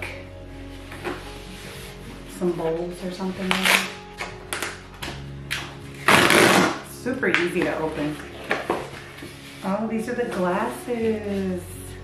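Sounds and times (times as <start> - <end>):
cardboard box tearing: 6.0 - 6.8
cardboard scrape: 7.9 - 11.6.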